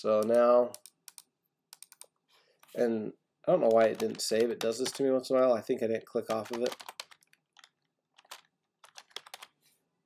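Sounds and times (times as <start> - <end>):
keyboard typing: 0.1 - 2.2, 3.6 - 5.1, 6.2 - 9.6.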